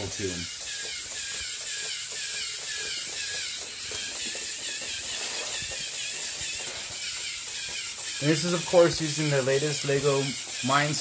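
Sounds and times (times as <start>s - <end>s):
robot motors whirring: 0.0s - 11.0s.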